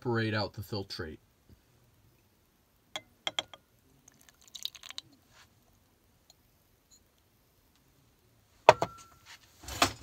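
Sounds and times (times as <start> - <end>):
glassware clicking: 3.0 - 3.6
liquid crackling and splashing: 4.0 - 5.1.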